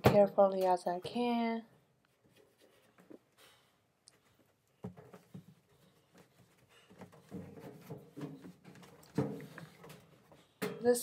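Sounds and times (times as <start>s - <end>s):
washing machine knocking and scraping: 7.0s - 11.0s.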